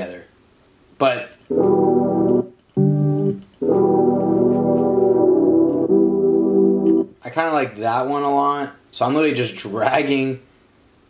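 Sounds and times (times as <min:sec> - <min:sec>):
melodic chords: 0:01.5 - 0:07.1.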